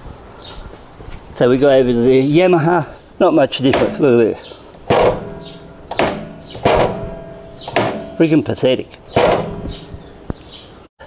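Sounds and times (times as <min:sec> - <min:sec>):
metal side stand knocks: 0:03.6 - 0:04.2, 0:04.8 - 0:10.3
metallic ring: 0:04.9 - 0:10.2.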